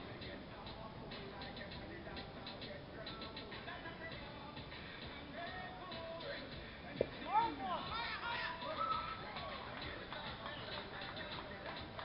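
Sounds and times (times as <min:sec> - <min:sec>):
background voices: 0:00.0 - 0:12.0
people shouting: 0:07.3 - 0:09.4.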